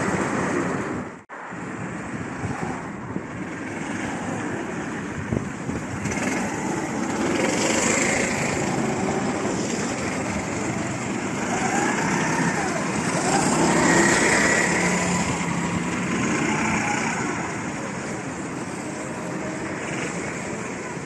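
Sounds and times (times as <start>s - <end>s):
go-kart engines passing: 0.0s - 21.0s.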